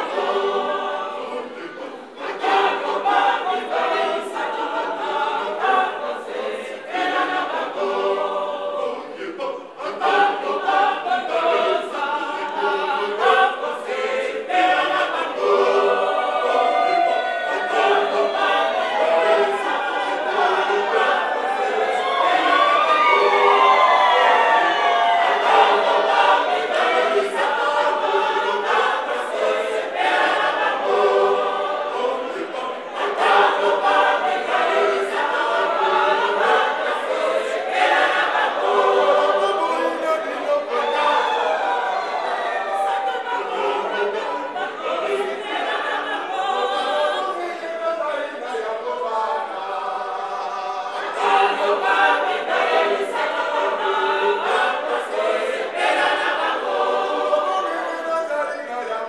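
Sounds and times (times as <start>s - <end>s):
women's choir singing in harmony: 0.0s - 59.0s.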